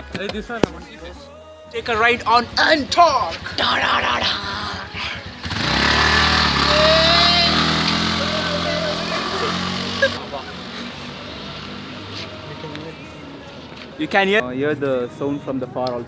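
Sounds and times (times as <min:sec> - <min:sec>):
scooter engine pulling away: 0:01.9 - 0:13.8.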